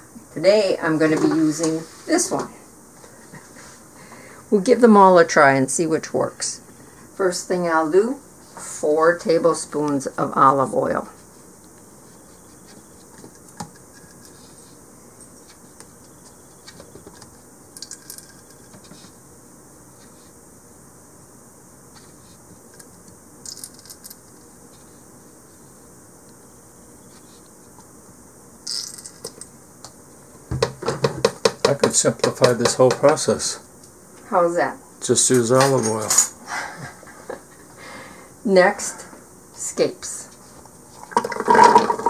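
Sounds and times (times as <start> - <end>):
low room hiss: 0.0 - 42.0.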